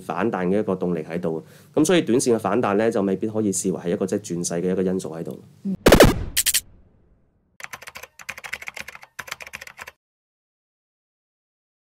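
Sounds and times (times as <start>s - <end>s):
keyboard typing clicks: 7.6s - 10.0s.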